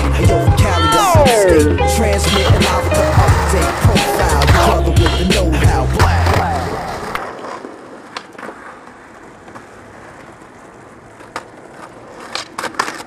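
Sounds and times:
music with heavy bass beat: 0:00.0 - 0:06.6
skateboard wheels rolling on pavement: 0:00.0 - 0:13.0
skateboard clicks: 0:02.1 - 0:13.0.

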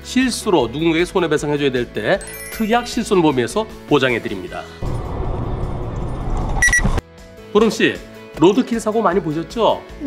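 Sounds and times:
short high beep: 0:06.6 - 0:06.9.

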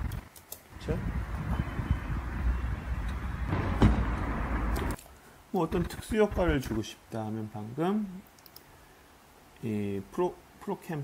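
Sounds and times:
low rumble with hiss: 0:00.0 - 0:11.0.

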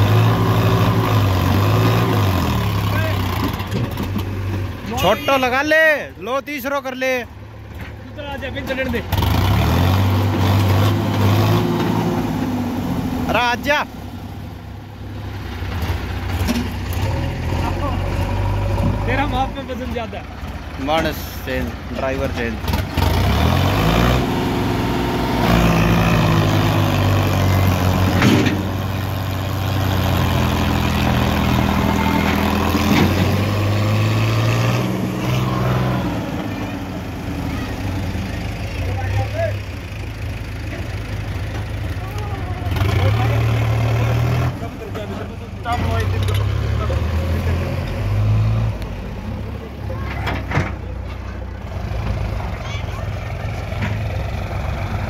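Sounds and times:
tractor diesel engine straining: 0:00.0 - 0:55.0.

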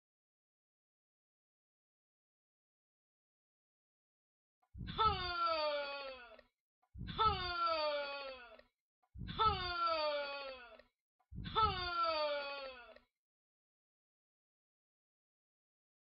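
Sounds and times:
young person wailing: 0:04.9 - 0:06.4, 0:07.1 - 0:08.6, 0:09.3 - 0:10.8, 0:11.5 - 0:13.0.

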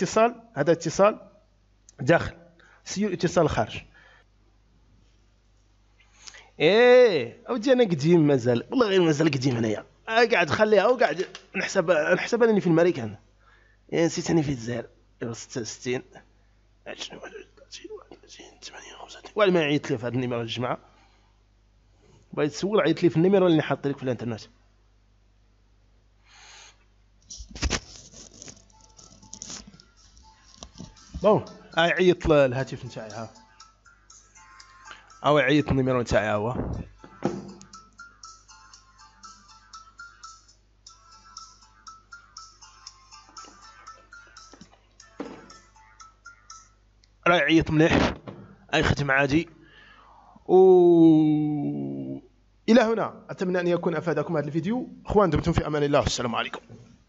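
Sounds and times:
phone ringtone: 0:28.7 - 0:35.9, 0:36.9 - 0:46.8.

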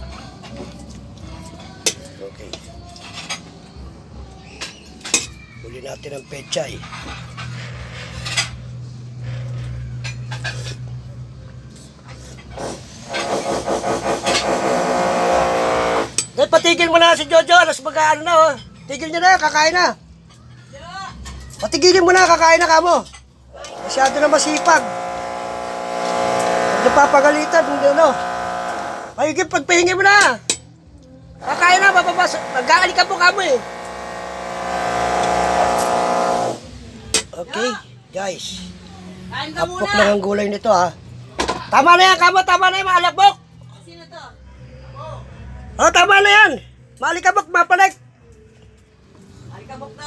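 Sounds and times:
power drill running: 0:13.1 - 0:16.2, 0:23.6 - 0:29.2, 0:31.4 - 0:36.6
low hum: 0:23.7 - 0:29.2, 0:31.4 - 0:36.6.

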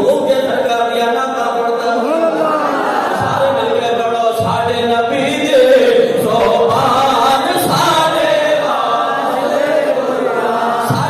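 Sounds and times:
man chanting melodically: 0:03.2 - 0:08.4.

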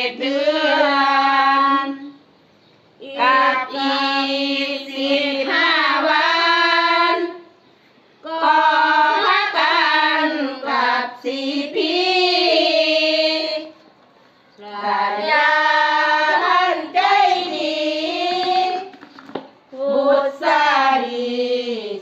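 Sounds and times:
women chanting together: 0:00.0 - 0:02.2, 0:03.0 - 0:07.5, 0:08.2 - 0:13.8, 0:14.6 - 0:18.9, 0:19.7 - 0:22.0.

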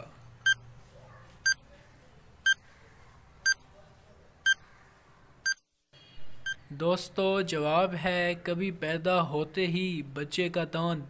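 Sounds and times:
short electronic beeps: 0:00.4 - 0:00.6, 0:05.5 - 0:06.6.

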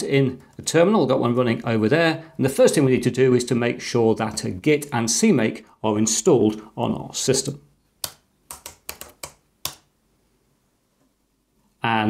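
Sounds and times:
keyboard key presses: 0:08.0 - 0:09.9.

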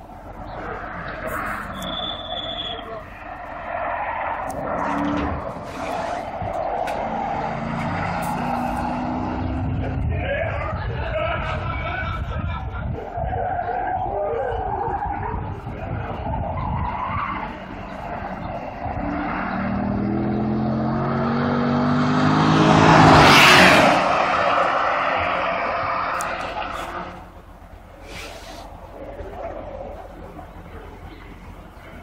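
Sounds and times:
race car engine passing by: 0:00.4 - 0:10.0, 0:17.4 - 0:27.4.

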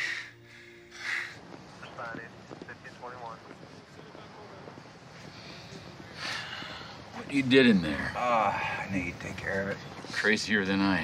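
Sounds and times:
faint background voices: 0:01.7 - 0:11.0.

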